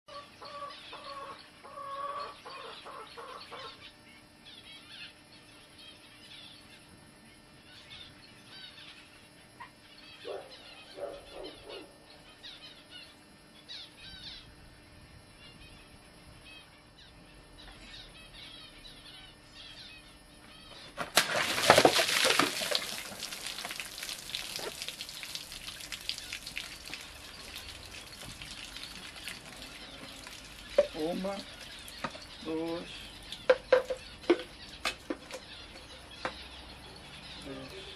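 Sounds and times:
clucking bird calls: 0.1 - 3.8, 9.6 - 12.0, 20.7 - 36.7
bird chirps: 21.8 - 37.9.

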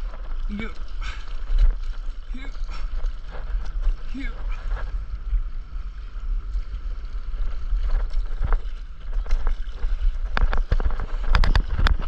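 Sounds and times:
sea water rushing: 0.0 - 12.0
wind rumbling on microphone: 0.0 - 12.0.

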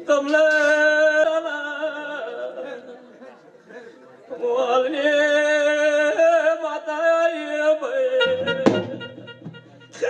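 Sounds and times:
man singing: 0.0 - 10.0
chatter of voices: 2.3 - 4.9
musical accompaniment: 8.1 - 10.0.

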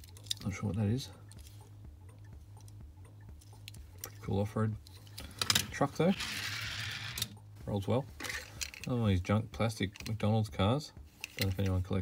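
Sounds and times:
steady low hum: 0.0 - 5.5.

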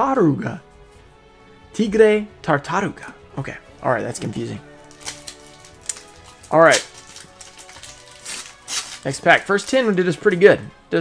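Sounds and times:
soft background music: 0.0 - 11.0
foil wrapper crinkling and tearing: 4.8 - 9.9.

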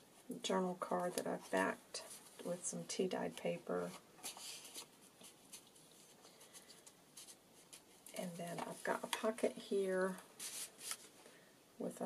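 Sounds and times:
pages turning with light ticks: 0.9 - 2.5, 3.4 - 11.2
paper rustling: 3.8 - 9.4, 10.1 - 11.2.

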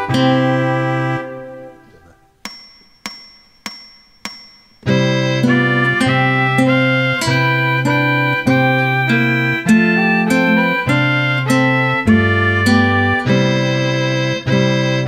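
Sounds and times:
classical guitar music: 0.0 - 2.2, 4.8 - 15.0
metronome clicks: 2.4 - 5.0.

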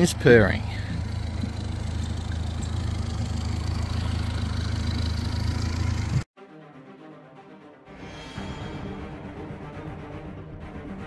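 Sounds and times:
outboard motor idling: 0.0 - 6.2.

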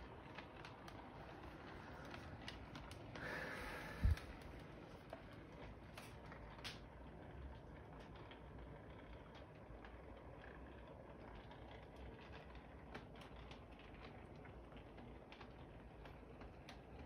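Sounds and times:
toy train running on track: 0.0 - 17.0.

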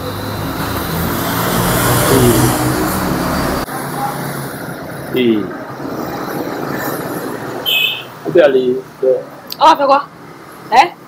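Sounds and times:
motor vehicle passing: 0.0 - 10.7.

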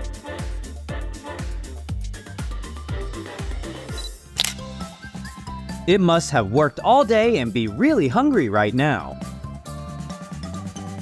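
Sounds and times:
background music: 0.0 - 11.0
camera shutter click: 4.4 - 4.7.

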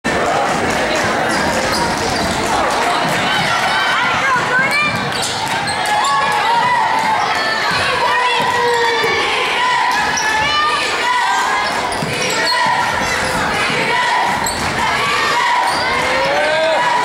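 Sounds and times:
crowd chatter and shouts: 0.0 - 17.0
basketball bouncing: 0.5 - 8.6, 11.6 - 16.2
sneaker squeaks: 1.2 - 2.6, 4.5 - 6.6, 10.0 - 10.6, 11.3 - 13.5, 14.2 - 16.2.

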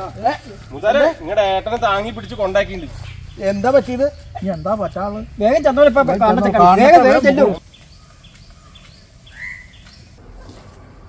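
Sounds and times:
bird chirping: 0.0 - 10.8.

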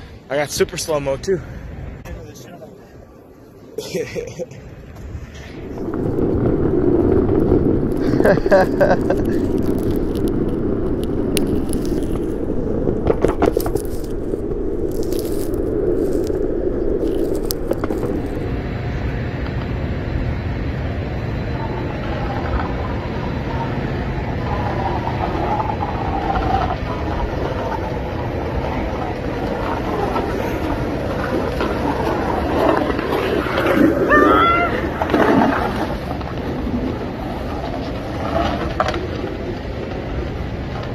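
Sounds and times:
skateboard wheels rolling on concrete: 0.0 - 40.9
skateboard clicks and knocks: 4.9 - 18.6, 21.6 - 40.9.

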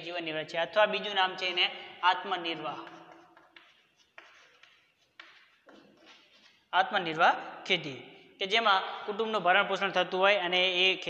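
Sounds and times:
chalk scratching on blackboard: 2.7 - 6.7.

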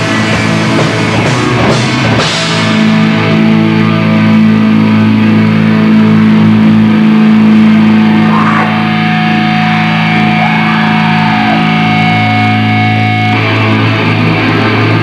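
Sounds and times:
distorted guitars and bass chord: 0.0 - 15.0
steady high tone: 7.4 - 13.9.

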